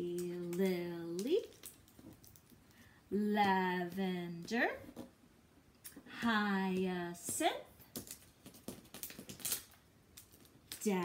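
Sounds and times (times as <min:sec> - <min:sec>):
paper card taps and rustles: 0:07.8 - 0:10.8.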